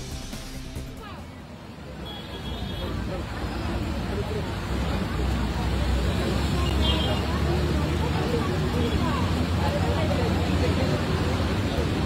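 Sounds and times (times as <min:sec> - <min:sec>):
bus engine rumble: 0:00.0 - 0:12.0
road noise: 0:00.0 - 0:12.0
passengers talking indistinctly: 0:00.7 - 0:12.0.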